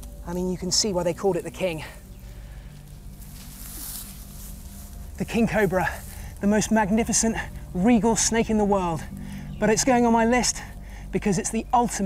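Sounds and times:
low steady hum: 0.0s - 12.0s
snake sliding through dry grass: 0.8s - 11.2s.

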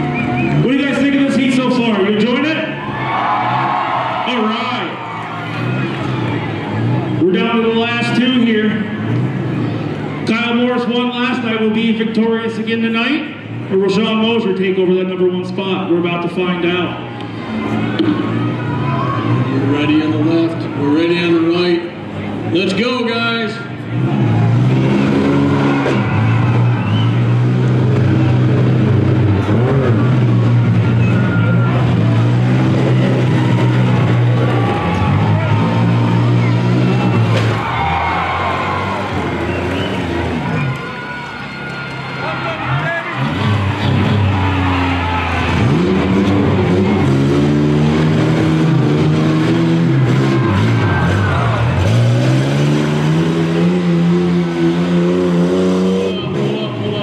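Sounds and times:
engines revving: 0.0s - 57.0s.

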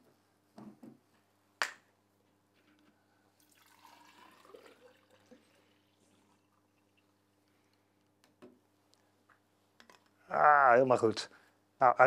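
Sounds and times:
liquid pouring into a cylinder: 3.4s - 7.3s.

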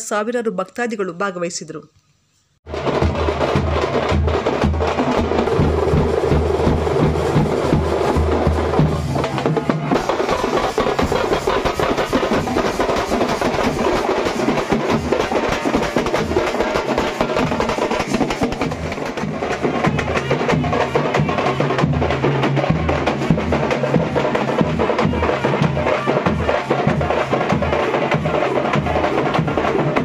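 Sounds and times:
deep booming drum beat: 2.7s - 30.0s
fast drumming with sticks: 2.7s - 30.0s.

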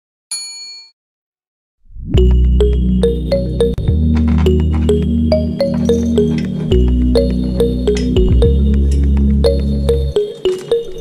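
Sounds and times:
background music: 2.2s - 11.0s
notification bell ding: 2.5s - 8.7s, 9.5s - 11.0s.

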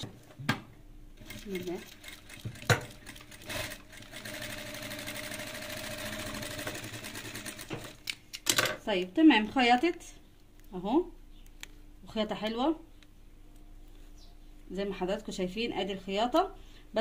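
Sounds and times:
sewing machine stitching: 1.2s - 8.0s.

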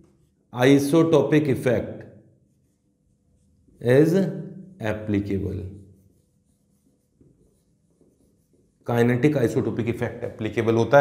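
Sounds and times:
man speaking: 0.6s - 1.9s, 3.8s - 5.7s, 8.9s - 11.0s
marker writing on whiteboard: 5.4s - 9.3s.

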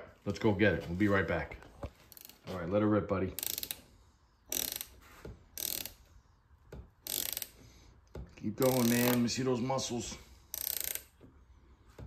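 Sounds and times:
socket ratchet clicking: 3.4s - 3.8s, 4.5s - 4.9s, 5.6s - 6.0s, 7.0s - 7.6s, 8.6s - 9.2s, 10.5s - 11.2s.

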